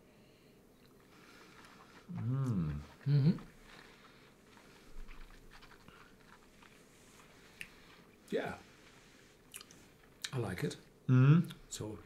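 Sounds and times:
man sipping and mouth sounds: 0:00.8 - 0:10.3.

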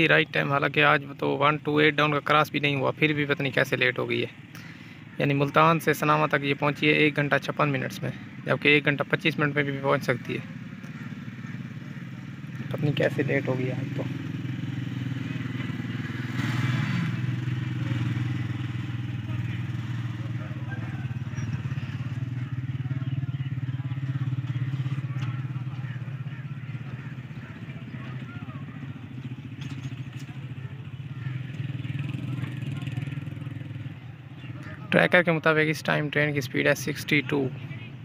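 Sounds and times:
engine running steadily: 0:00.0 - 0:38.0.

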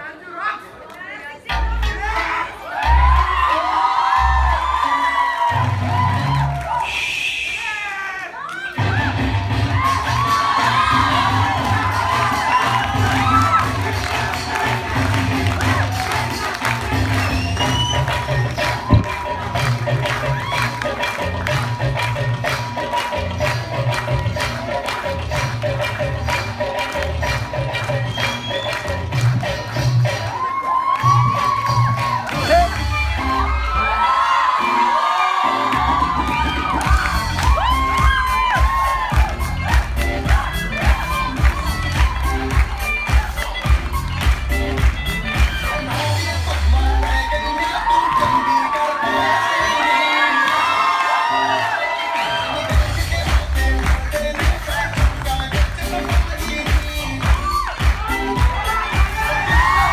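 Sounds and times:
dance music with steady beat: 0:01.5 - 0:07.6, 0:08.8 - 0:59.9
audience cheering: 0:02.6 - 0:24.3, 0:30.1 - 0:43.7, 0:45.6 - 0:53.0, 0:54.6 - 0:59.9.

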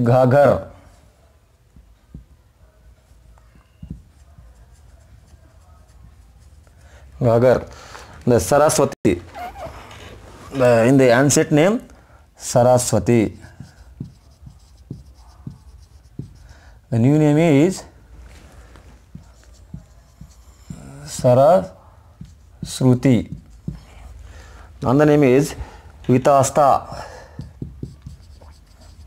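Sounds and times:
marker tapping on whiteboard: 0:01.7 - 0:02.4, 0:03.4 - 0:04.6, 0:13.5 - 0:16.6, 0:19.1 - 0:21.6, 0:22.2 - 0:23.9, 0:27.3 - 0:29.0
marker scratching on whiteboard: 0:01.8 - 0:07.7, 0:13.2 - 0:16.8, 0:18.5 - 0:24.2, 0:26.4 - 0:29.0.

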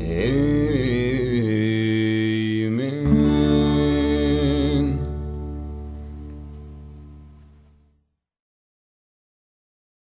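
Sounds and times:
man singing a long note: 0:00.0 - 0:05.4
country backing track: 0:00.0 - 0:07.9.

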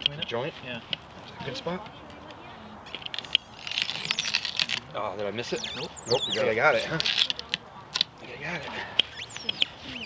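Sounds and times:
crackling and crunching of joint: 0:02.0 - 0:08.2.

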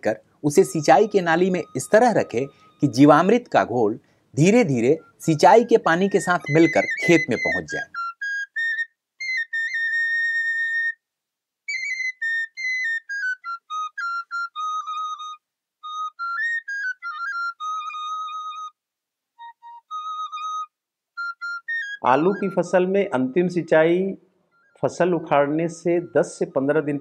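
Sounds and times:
solo flute melody: 0:00.4 - 0:18.8, 0:19.4 - 0:23.2, 0:24.5 - 0:27.0.

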